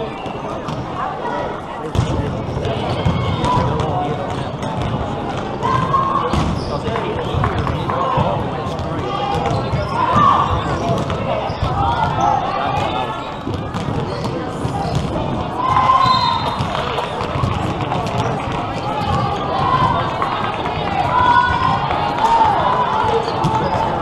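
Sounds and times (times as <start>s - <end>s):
players calling out: 0.0s - 24.0s
voices around the court: 0.0s - 24.0s.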